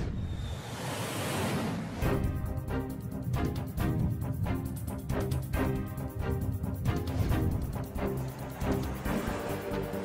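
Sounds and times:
jet aircraft passing by: 0.0 - 2.4, 6.8 - 10.0.

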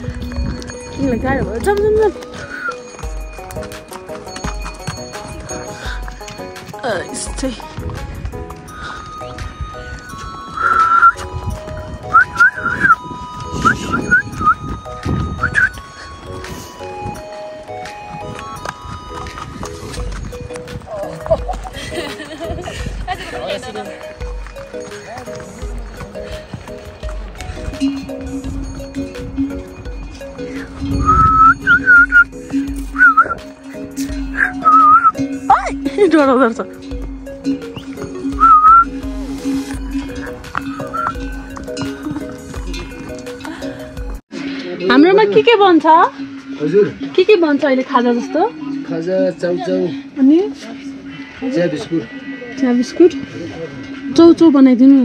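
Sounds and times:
background music: 0.0 - 55.0
person whistling: 2.5 - 2.8, 10.6 - 11.3, 12.0 - 14.7, 15.3 - 15.9, 30.9 - 33.5, 34.4 - 35.2, 37.7 - 39.0, 40.6 - 41.2
short whistled note: 10.6 - 11.2, 12.1 - 13.0, 15.4 - 15.8, 37.8 - 39.0.

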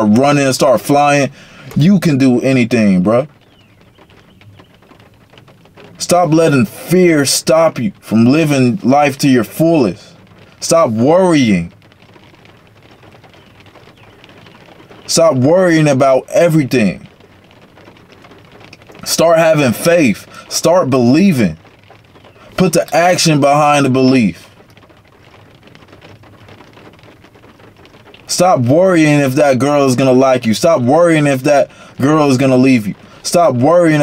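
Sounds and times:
background hiss: 0.0 - 34.0
faint ticking: 0.0 - 34.0
light rain on car roof: 0.0 - 34.0.

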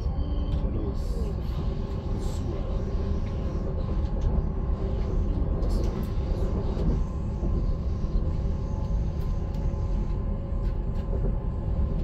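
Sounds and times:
train rumble inside carriage: 0.0 - 12.0.

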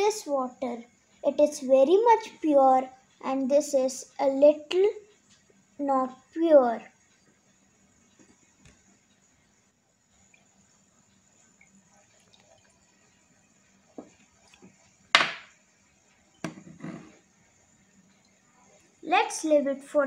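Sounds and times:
water pouring into funnel: 11.4 - 15.0
glass knocks: 15.2 - 15.5, 16.4 - 17.1.

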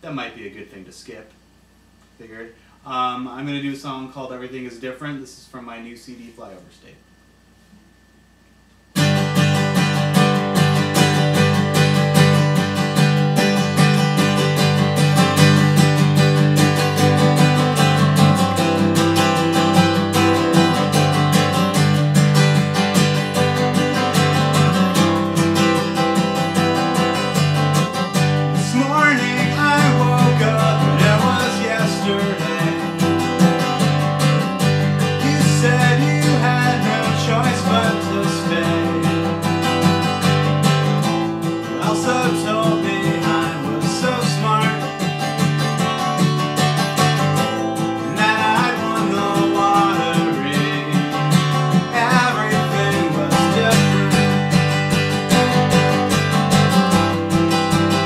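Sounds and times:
acoustic guitar strumming chords: 8.9 - 58.0.

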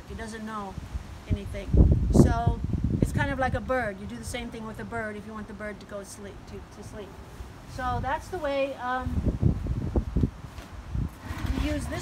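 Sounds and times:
wind buffeting microphone: 0.0 - 5.8, 7.4 - 12.0.

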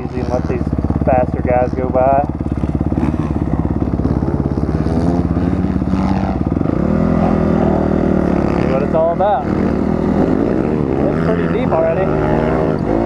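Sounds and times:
dirt bike engine revving: 0.0 - 13.0.

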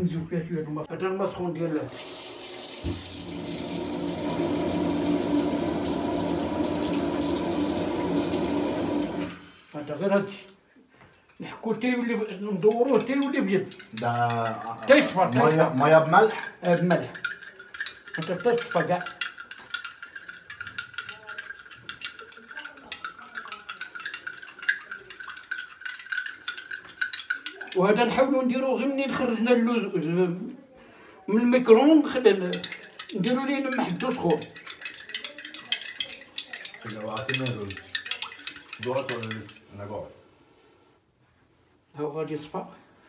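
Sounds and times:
tap water splashing into sink: 1.8 - 9.5
teaspoon clinking against glass: 11.7 - 28.0, 32.3 - 39.7.

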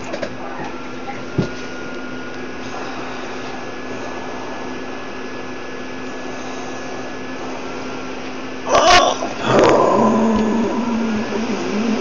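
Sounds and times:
steady hum and hiss: 0.0 - 12.0.

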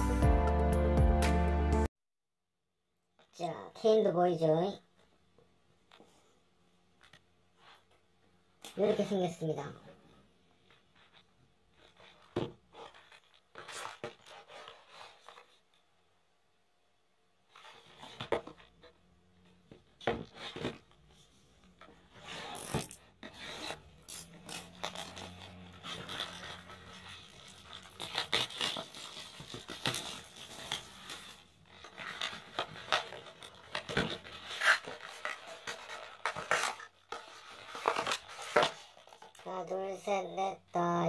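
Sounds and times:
plastic wrap tearing and crinkling: 24.0 - 39.4.

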